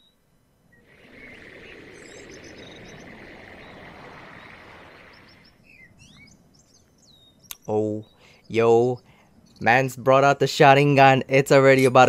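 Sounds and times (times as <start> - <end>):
steady insect-like drone: 0.6 - 6.8
birds chirping: 0.7 - 12.0.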